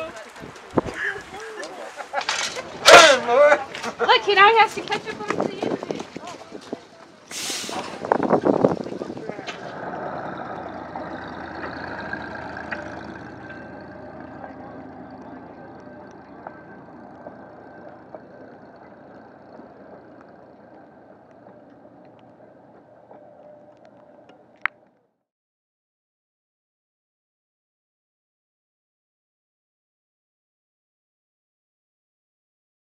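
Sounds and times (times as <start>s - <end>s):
train rumbling on rails: 0.0s - 24.7s
loud hiss: 7.3s - 8.3s
faint whining tones: 7.9s - 25.0s.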